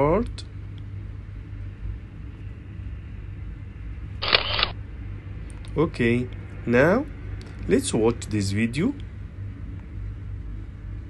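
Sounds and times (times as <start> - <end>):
steady low hum: 0.0 - 11.0
rush of noise: 4.2 - 4.7
sharp click: 4.2 - 4.7.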